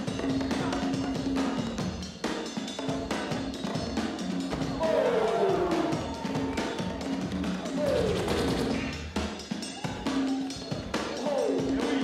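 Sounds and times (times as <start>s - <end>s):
hip-hop break music: 0.0s - 12.0s.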